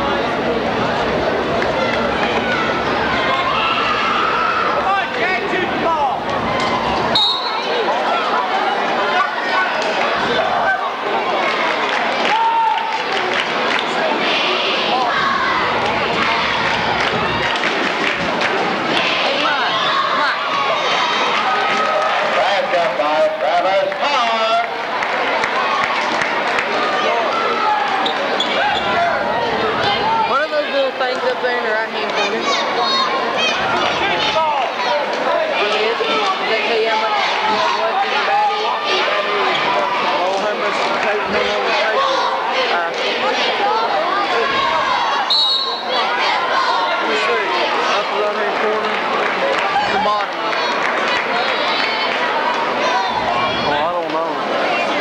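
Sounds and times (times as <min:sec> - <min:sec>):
crowd shouting and cheering: 0:00.0 - 0:55.0.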